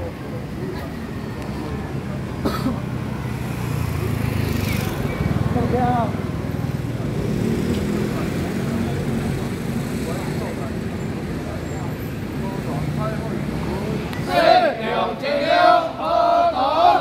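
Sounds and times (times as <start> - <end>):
traffic hum: 0.0 - 17.0
voices murmuring: 0.0 - 17.0.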